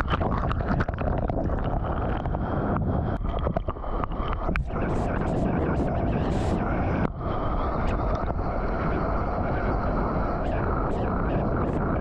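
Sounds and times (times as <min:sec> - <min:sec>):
seawater rushing and churning: 0:00.0 - 0:12.0
wind noise on microphone: 0:00.0 - 0:12.0.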